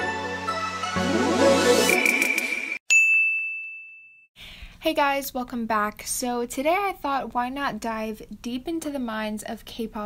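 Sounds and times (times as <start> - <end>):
bell-like chime ding: 1.9 - 4.3.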